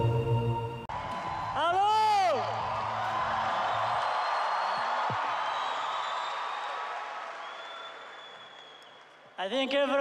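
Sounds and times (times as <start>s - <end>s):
crowd cheering and clapping: 0.8s - 9.4s.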